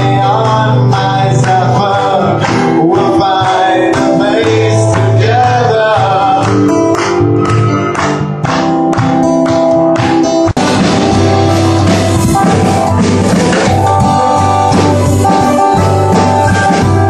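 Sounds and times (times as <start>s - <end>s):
drum kit: 0.0s - 17.0s
keyboard playing: 0.0s - 17.0s
strummed acoustic guitar: 0.0s - 17.0s.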